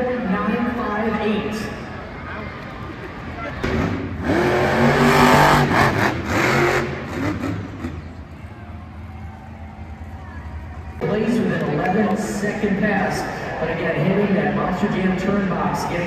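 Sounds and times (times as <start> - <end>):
monster truck engine revving: 3.5 - 9.2.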